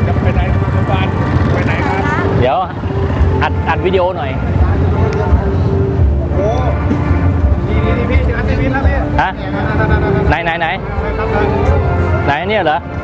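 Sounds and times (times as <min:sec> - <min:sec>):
motorcycle engines rumbling: 0:00.0 - 0:13.0.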